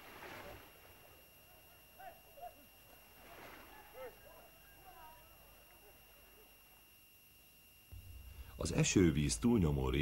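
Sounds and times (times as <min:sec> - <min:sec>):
soft hiss: 0:05.7 - 0:10.0.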